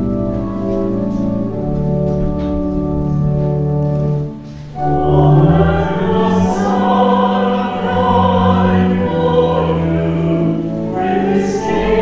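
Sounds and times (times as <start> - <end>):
organ chord: 0.0 - 12.0
voices singing a hymn: 4.6 - 12.0.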